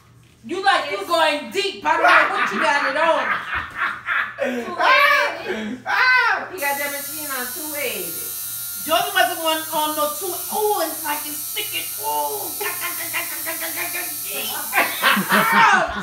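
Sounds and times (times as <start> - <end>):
tattoo machine buzzing: 6.6 - 15.5.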